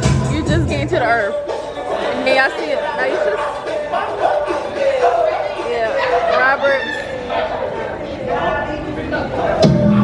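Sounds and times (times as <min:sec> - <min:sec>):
people chattering in a hall: 0:00.0 - 0:10.0.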